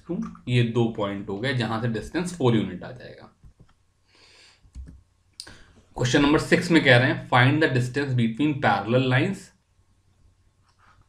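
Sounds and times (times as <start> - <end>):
person speaking: 0.0 - 3.3, 4.8 - 9.5
soft hiss: 0.0 - 11.0.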